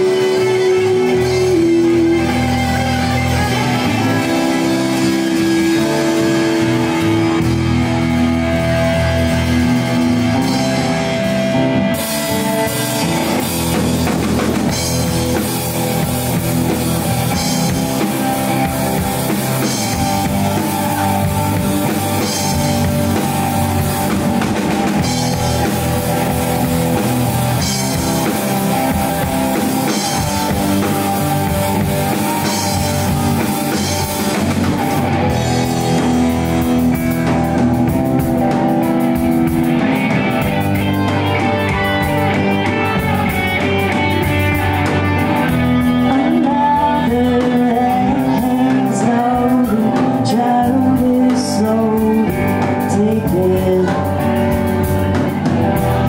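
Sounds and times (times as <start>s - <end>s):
drum kit beat: 0.0s - 56.0s
live rock band playing: 0.0s - 56.0s.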